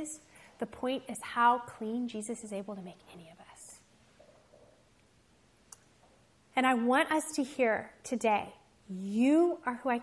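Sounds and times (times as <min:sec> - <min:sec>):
woman speaking softly: 0:00.0 - 0:03.9.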